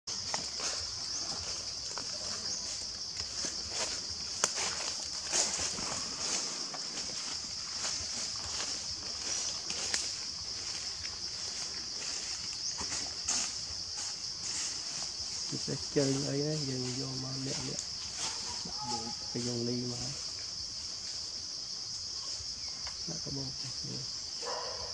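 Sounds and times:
insects chorus: 0.1 - 24.9.

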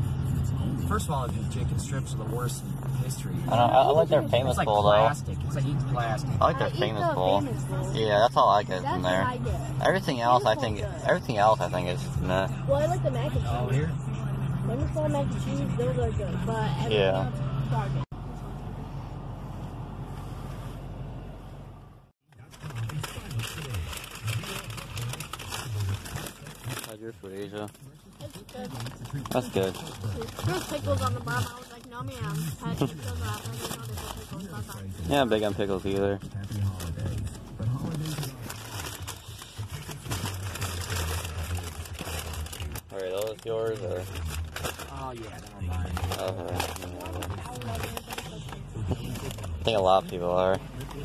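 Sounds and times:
low car rumble: 0.0 - 51.0
low indistinct voices: 22.3 - 51.0
paper bag rustling: 22.4 - 27.5, 28.3 - 50.2.

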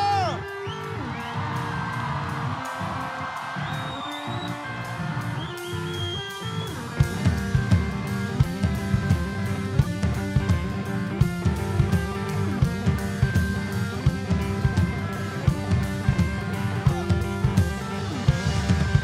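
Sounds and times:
drums: 0.0 - 19.0
electric guitars: 0.0 - 19.0.

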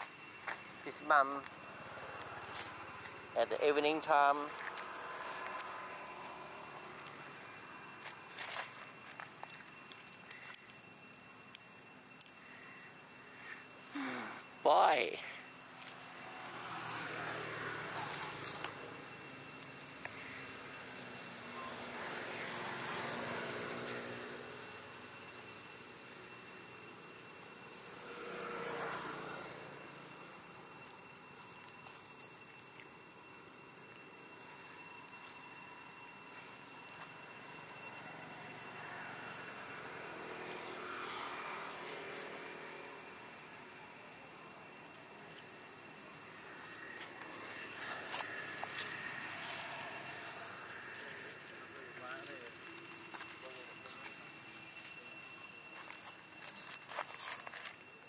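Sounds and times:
faint high-pitched whine: 0.0 - 58.0
motor vehicles passing: 21.4 - 24.9, 27.8 - 30.0.

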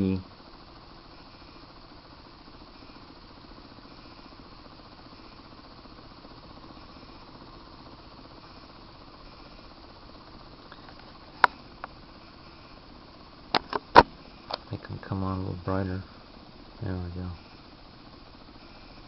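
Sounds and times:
small motor hissing: 0.0 - 19.0.

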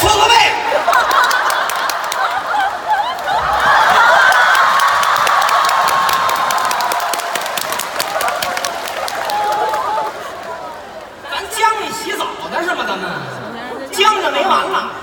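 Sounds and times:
audience cheering and calling out: 0.0 - 11.9
people laughing: 0.6 - 5.9
audience clapping: 0.8 - 11.1.

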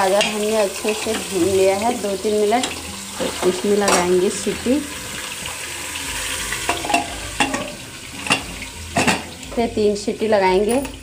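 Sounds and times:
carrots sizzling in ghee: 0.0 - 11.0.

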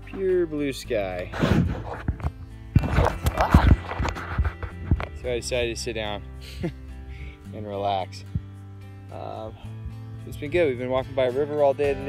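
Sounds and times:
music playing: 0.0 - 12.0
phone handling thumps and rubbing: 1.3 - 5.2.

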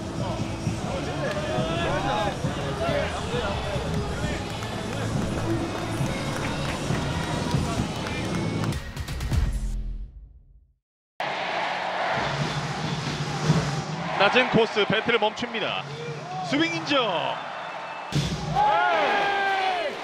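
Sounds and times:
background music: 0.0 - 9.9
players' voices: 0.2 - 8.7, 13.3 - 17.4.

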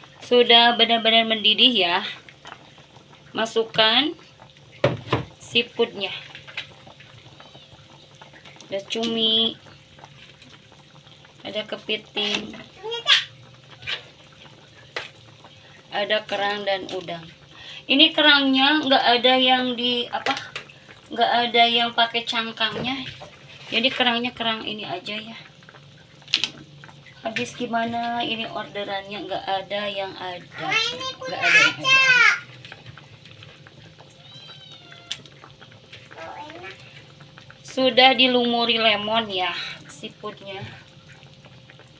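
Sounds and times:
food cooking in a pan: 0.0 - 41.9
seafood splashing into sauce: 31.4 - 37.6.

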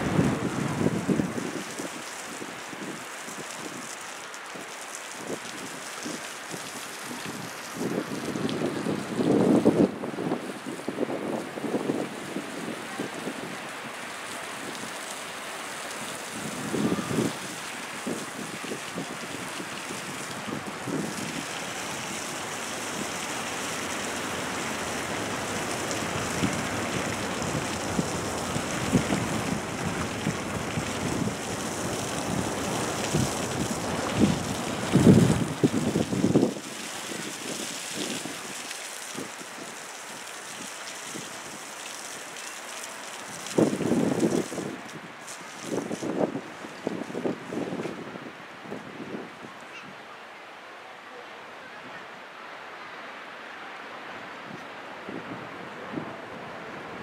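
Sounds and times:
water spraying onto dirt: 0.0 - 49.2.

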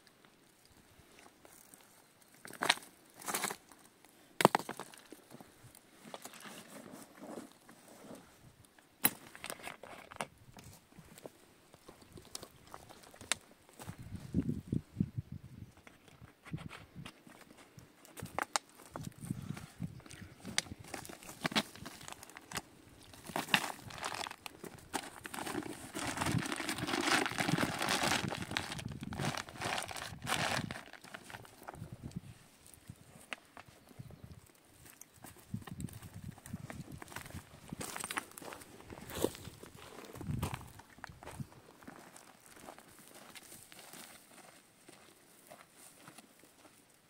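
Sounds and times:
footsteps on stony ground: 9.0 - 14.7, 15.7 - 46.9
plastic bottles crinkling: 20.6 - 31.8.

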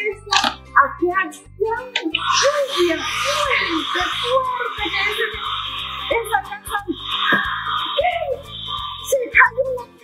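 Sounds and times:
music: 0.0 - 10.0
voices: 1.7 - 10.0
hair dryer blowing: 2.2 - 9.1.

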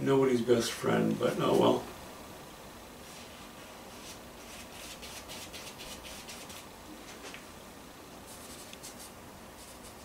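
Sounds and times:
steady room hiss: 0.0 - 10.0
paintbrush strokes on canvas: 3.0 - 7.3, 8.2 - 10.0.

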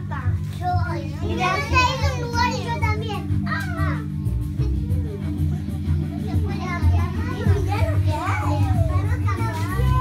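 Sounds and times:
background music with low bass: 0.0 - 10.0
young children chattering: 0.0 - 10.0.

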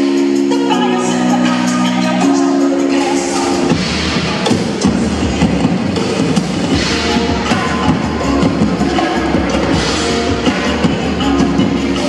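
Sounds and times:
drum kits playing fast: 1.8 - 12.0.

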